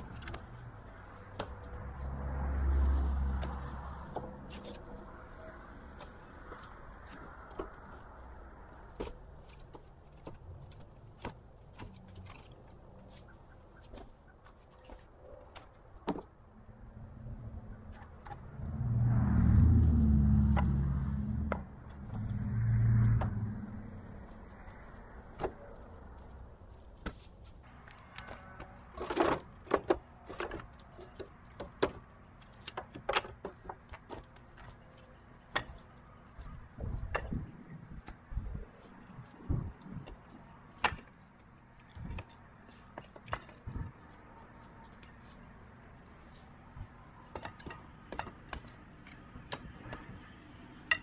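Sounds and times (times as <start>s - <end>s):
loud low rumbles: 16.8s - 24.2s.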